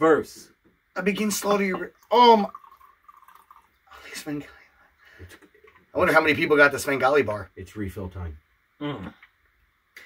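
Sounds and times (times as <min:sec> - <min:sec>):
liquid pouring into glass: 0:01.6 - 0:04.3, 0:05.3 - 0:06.0.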